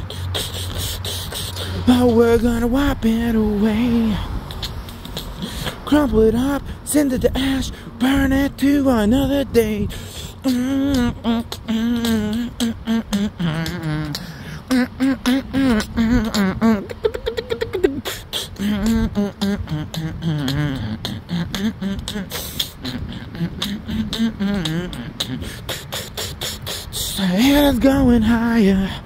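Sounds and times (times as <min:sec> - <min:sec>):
hummed gliding voice tones: 0:00.0 - 0:29.0
man beatboxing: 0:00.0 - 0:29.0.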